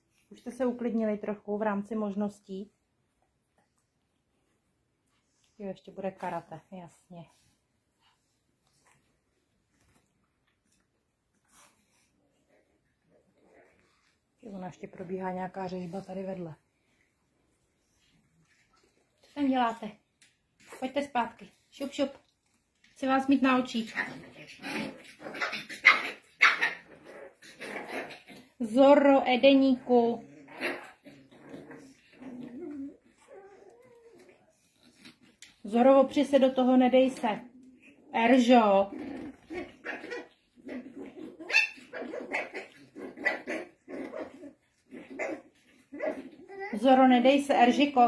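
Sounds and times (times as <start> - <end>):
puppies yapping and growling: 24.2 - 28.6, 39.1 - 46.9.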